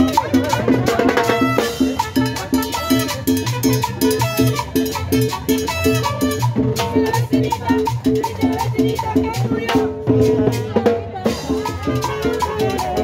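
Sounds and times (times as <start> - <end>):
brass: 0.0 - 6.8
saxophones: 0.0 - 6.9.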